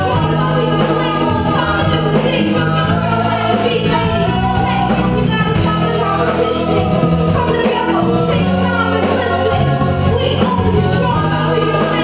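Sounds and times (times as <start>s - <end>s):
backing singers harmonizing: 0.0s - 12.0s
live band playing: 0.0s - 12.0s
woman singing lead: 0.0s - 12.0s.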